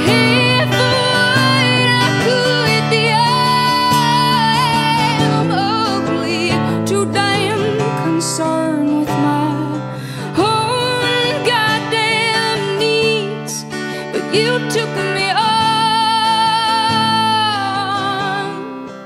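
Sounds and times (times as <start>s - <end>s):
woman singing with vibrato: 0.0s - 18.9s
strummed acoustic guitar: 0.0s - 19.0s.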